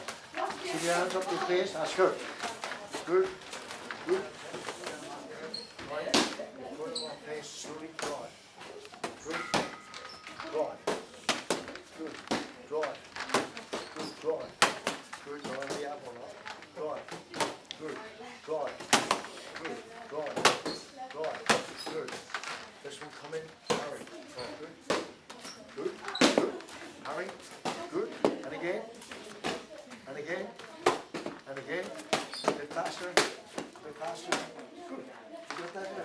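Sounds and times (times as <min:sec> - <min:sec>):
boxing gloves slapping mitts: 0:18.7 - 0:22.3, 0:30.8 - 0:34.6.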